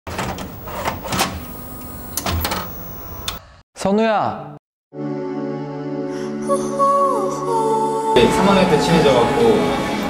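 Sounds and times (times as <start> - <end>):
vcr clicks and clunks: 0.1 - 3.4.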